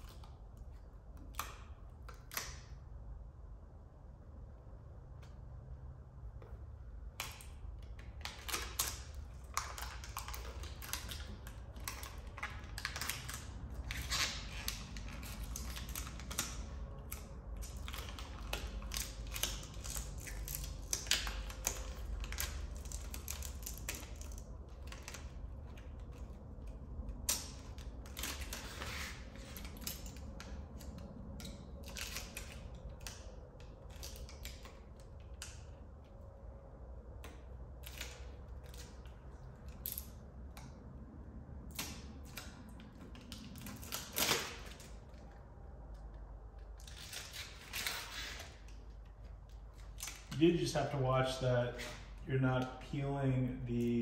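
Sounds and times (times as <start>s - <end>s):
plastic film crinkling and crackling: 7.2s - 35.8s, 41.8s - 45.4s, 46.6s - 52.8s.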